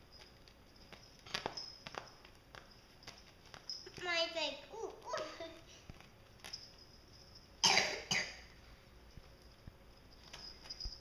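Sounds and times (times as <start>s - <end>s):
loud cough: 7.6s - 8.5s.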